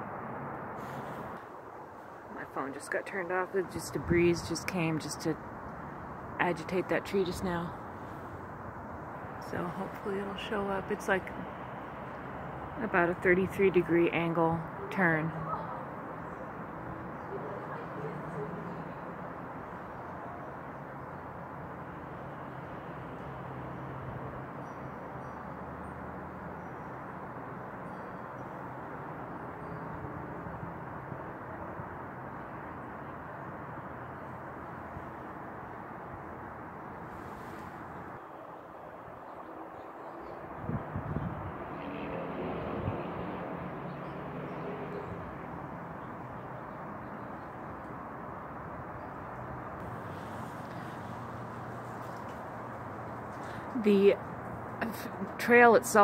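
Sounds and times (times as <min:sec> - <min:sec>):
outdoor background rumble and hiss: 0:00.0 - 0:56.0.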